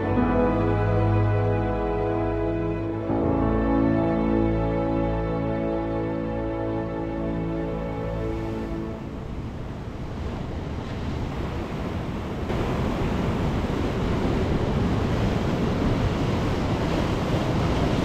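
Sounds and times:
ocean surf breaking over rocks: 8.2s - 18.0s
wind buffeting microphone: 8.9s - 18.0s.

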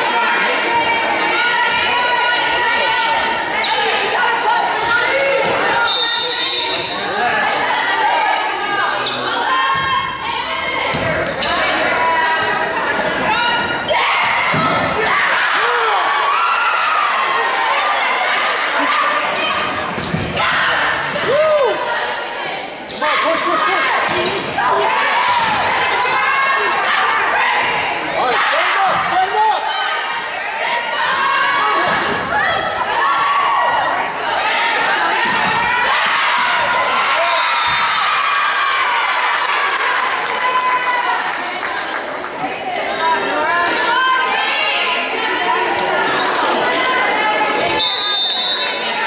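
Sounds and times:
echoing crowd voices: 0.0s - 49.0s
volleyball hits: 35.1s - 35.7s.

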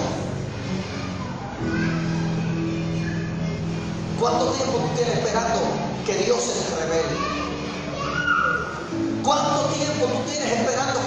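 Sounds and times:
man speaking amplified: 4.2s - 7.3s, 9.2s - 11.0s
child calling out: 7.1s - 9.0s.

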